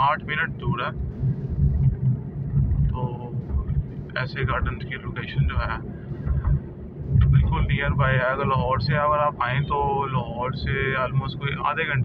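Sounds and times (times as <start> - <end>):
car engine and tyres rumbling: 0.0 - 12.0.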